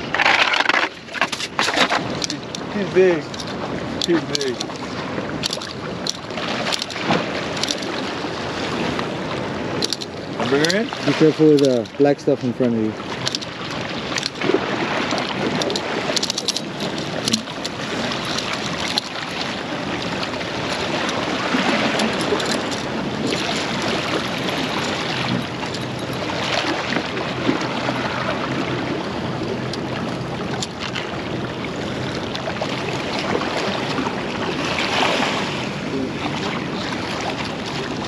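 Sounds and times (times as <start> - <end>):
waves splashing against rocks: 0.0 - 38.0.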